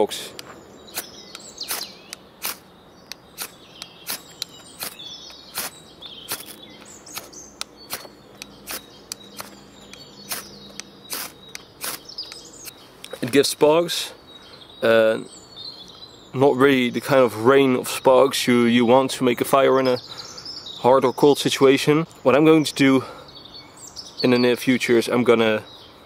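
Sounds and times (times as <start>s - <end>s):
knife scraping fire steel: 0.9s - 2.6s, 3.4s - 9.6s, 10.2s - 10.5s, 11.1s - 12.0s.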